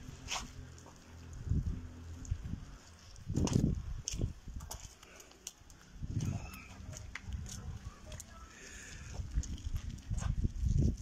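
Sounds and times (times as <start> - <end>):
wind buffeting microphone: 1.3 - 4.9, 5.9 - 11.0.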